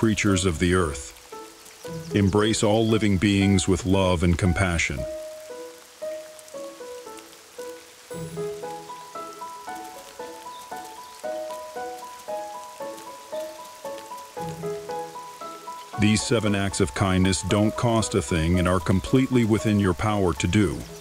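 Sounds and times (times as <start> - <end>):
falling rain hiss: 0.0 - 21.0
gentle slow melody: 0.0 - 21.0.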